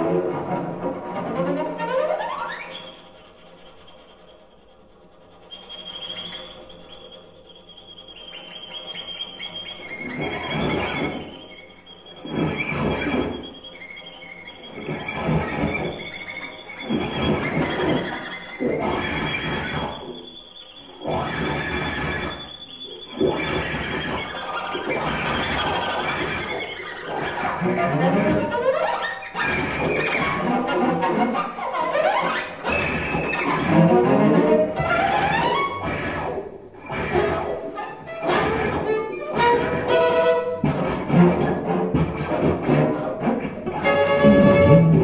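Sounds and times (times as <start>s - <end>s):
bowed cello: 0.0s - 45.0s
guitar strings scraped with object: 24.8s - 45.0s.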